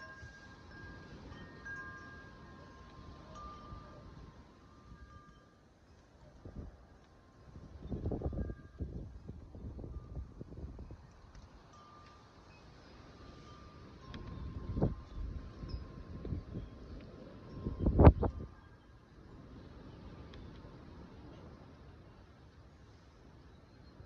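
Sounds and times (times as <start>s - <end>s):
wind gusting over microphone: 6.2s - 11.8s, 12.7s - 22.0s.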